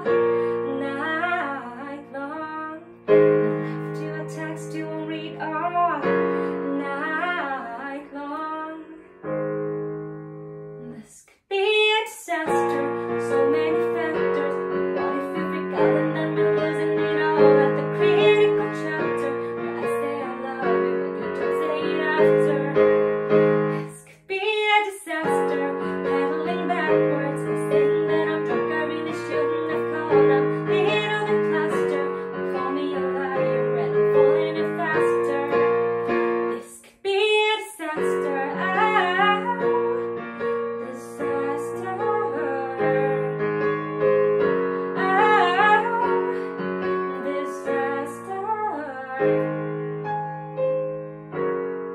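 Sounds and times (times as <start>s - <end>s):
woman singing pop song: 0.0s - 9.3s, 10.8s - 43.7s, 44.4s - 49.7s
piano chords: 0.0s - 51.9s.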